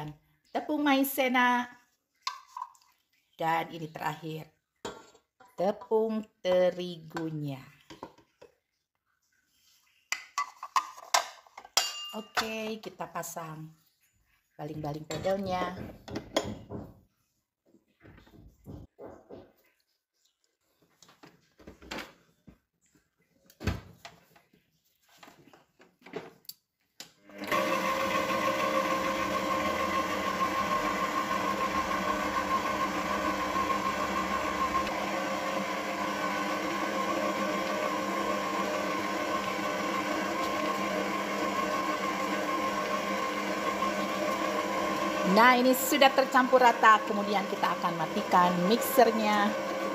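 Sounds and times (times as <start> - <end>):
stand mixer motor humming: 27.3 - 49.9.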